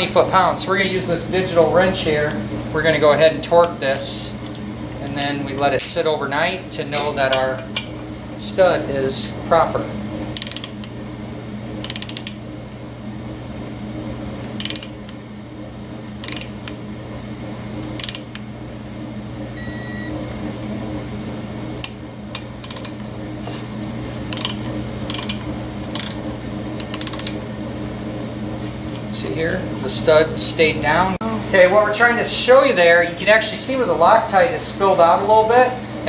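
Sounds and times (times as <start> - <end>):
steady low hum: 0.0 - 36.0
torque wrench ratchet clicking: 10.4 - 10.8, 11.8 - 12.3, 14.6 - 14.9, 16.2 - 16.5, 18.0 - 18.2, 22.6 - 22.9, 24.3 - 25.4, 26.0 - 26.2, 26.8 - 27.3
short electronic beep: 19.6 - 20.2.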